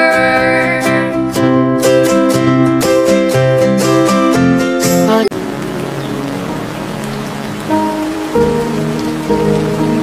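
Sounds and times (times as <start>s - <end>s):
steady rain on water and grass: 5.3s - 10.0s.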